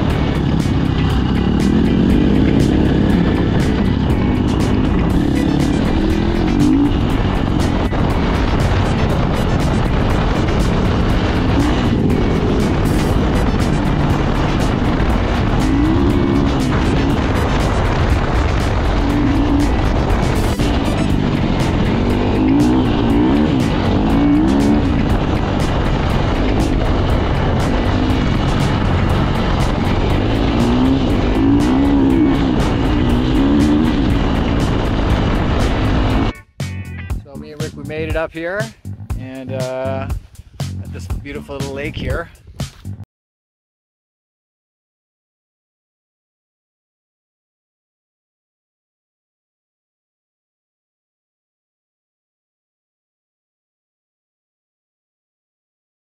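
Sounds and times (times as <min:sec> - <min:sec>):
dirt bike engine revving: 0:00.0 - 0:36.4.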